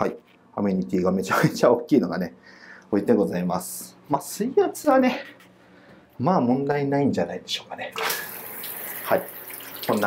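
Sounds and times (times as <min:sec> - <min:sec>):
hand shower spraying water: 0:08.0 - 0:10.0.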